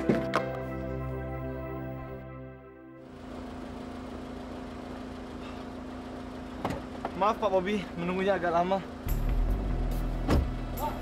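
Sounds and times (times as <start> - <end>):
background music: 0.0 - 3.0, 9.1 - 11.0
car engine idling: 3.0 - 11.0.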